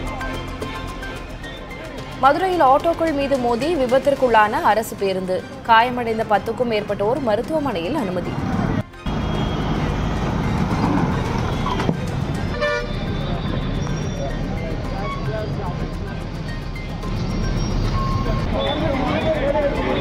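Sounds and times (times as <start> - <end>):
crowd of voices: 0.0 - 20.0
traffic: 0.0 - 20.0
vehicle horn: 9.0 - 11.9, 12.5 - 14.2.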